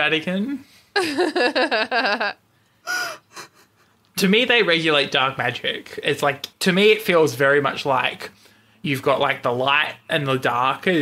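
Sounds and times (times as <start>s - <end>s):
people laughing: 1.0s - 2.3s
high-pitched gasping laugh: 2.8s - 4.0s
quick breath: 8.3s - 8.8s.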